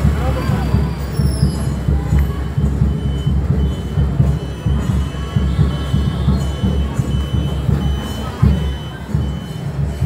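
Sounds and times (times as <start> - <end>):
high electronic beeps: 2.4 - 10.0.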